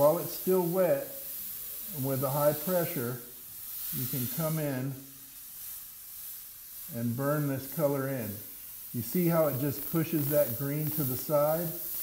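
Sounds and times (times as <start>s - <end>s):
airbrush spraying hiss: 0.0s - 12.0s.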